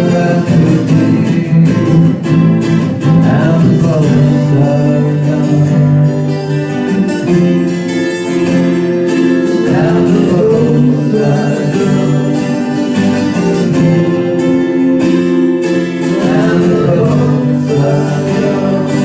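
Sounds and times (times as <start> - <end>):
acoustic guitars strumming: 0.0 - 19.0.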